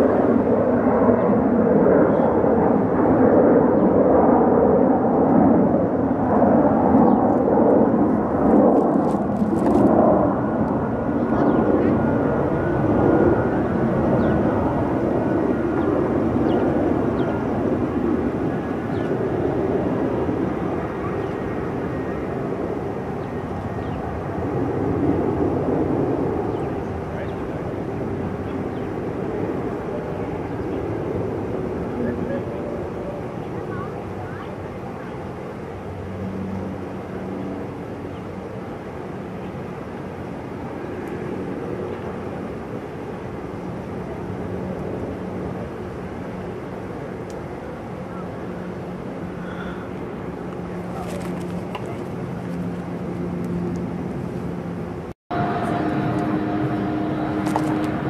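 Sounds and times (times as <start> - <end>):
jet engines running loud: 0.0 - 58.0.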